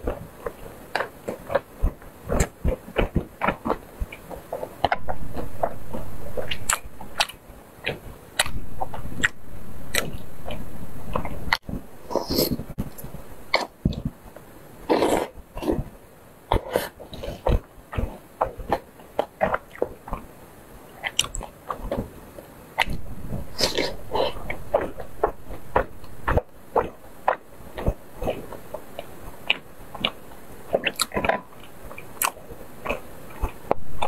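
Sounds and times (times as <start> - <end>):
wet chewing and lip smacking: 0.1 - 14.1, 16.5 - 20.2, 21.0 - 22.1, 22.8 - 33.8.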